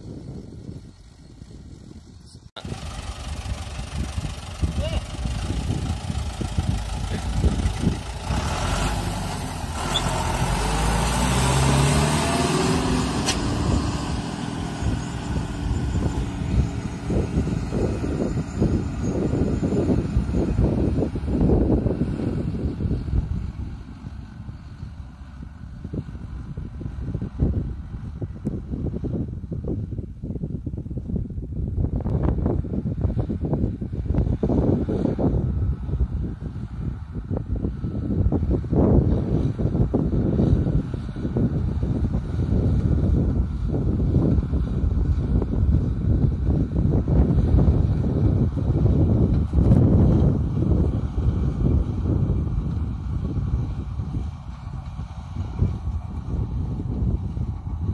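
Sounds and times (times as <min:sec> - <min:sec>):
tractor diesel engine passing: 0:00.0 - 0:29.2, 0:34.4 - 0:57.9.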